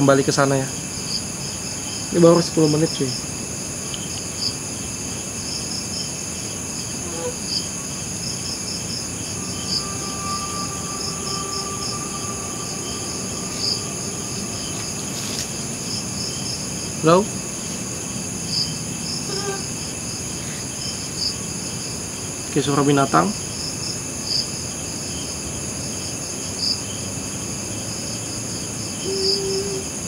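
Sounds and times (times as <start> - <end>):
crickets and insects buzzing: 0.0 - 30.0
faint steady tone: 0.7 - 22.3.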